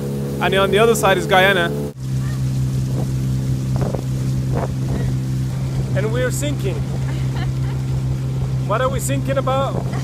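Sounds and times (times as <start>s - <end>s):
motorboat engine running: 0.0s - 10.0s
water splashing: 0.0s - 10.0s
wind on microphone: 2.0s - 10.0s.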